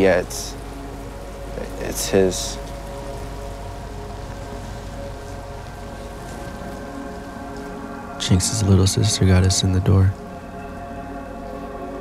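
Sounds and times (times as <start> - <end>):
soft drone of held tones: 0.0 - 12.0
steady hiss: 0.0 - 12.0.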